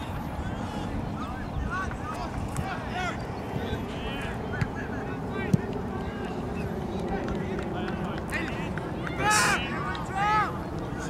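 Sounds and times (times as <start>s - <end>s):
low background noise: 0.0s - 11.0s
players shouting: 0.6s - 11.0s.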